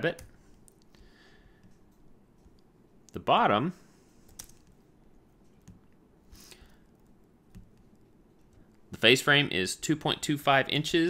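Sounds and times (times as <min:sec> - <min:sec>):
computer mouse and keyboard clicks: 0:04.2 - 0:08.8.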